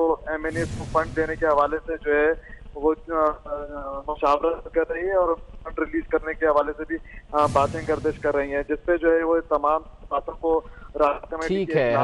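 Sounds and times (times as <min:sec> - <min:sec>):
man speaking over telephone: 0:00.0 - 0:12.0.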